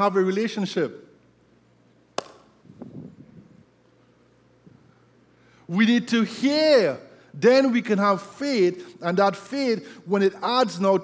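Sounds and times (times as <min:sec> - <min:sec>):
sharp click: 0:02.2 - 0:02.5.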